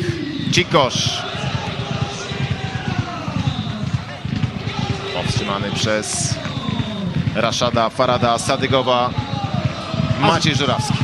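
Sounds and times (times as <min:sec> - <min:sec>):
crowd voices and chanting: 0:00.0 - 0:11.0
low thumps: 0:01.3 - 0:11.0.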